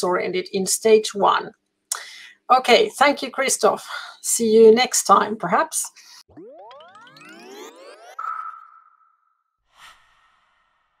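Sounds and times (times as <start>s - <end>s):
ringing tone: 6.3s - 9.4s.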